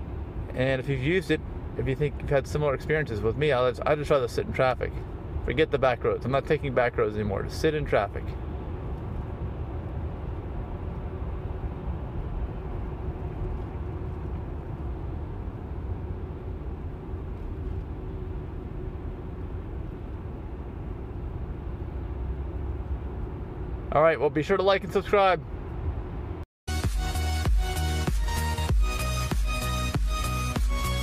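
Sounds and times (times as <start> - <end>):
tyre and road noise: 0.0 - 31.0.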